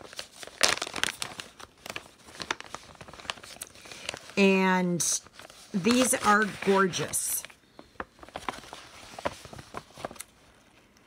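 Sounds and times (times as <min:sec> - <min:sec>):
plastic packaging crinkling: 0:00.0 - 0:10.5.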